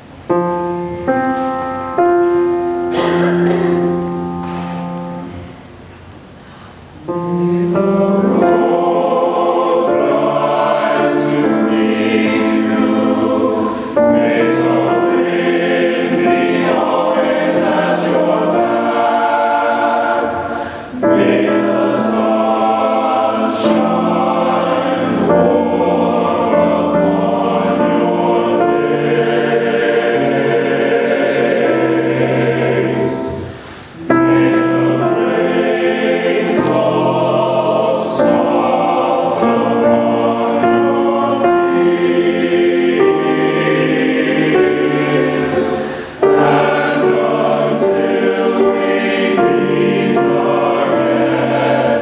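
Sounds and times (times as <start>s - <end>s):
men's choir singing in harmony: 0.0s - 5.7s, 7.0s - 52.0s.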